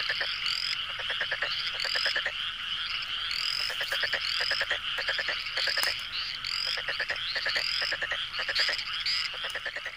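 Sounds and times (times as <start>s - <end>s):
frogs croaking and chirping: 0.0s - 9.9s.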